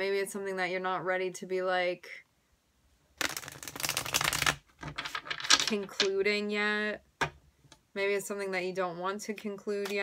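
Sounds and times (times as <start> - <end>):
cards being riffle-shuffled: 3.2 - 6.1.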